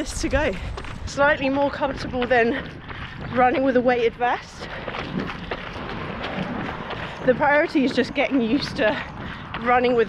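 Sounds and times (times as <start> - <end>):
footsteps on pavement: 0.0 - 10.0
steady rushing noise: 0.0 - 10.0.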